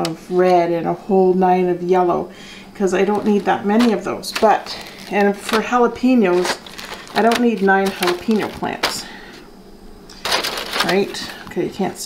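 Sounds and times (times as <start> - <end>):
plastic bag crinkling: 2.9 - 9.2, 10.1 - 12.0.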